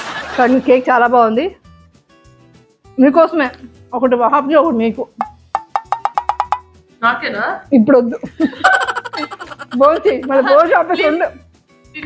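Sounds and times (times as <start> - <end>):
wood-block knocks: 5.2 - 6.8.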